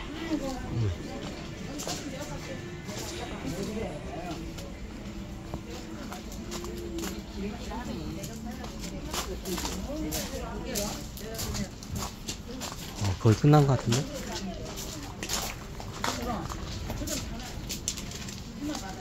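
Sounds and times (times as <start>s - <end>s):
music: 0.0s - 12.1s
background chatter of voices: 0.0s - 19.0s
footsteps on gravel: 0.1s - 19.0s.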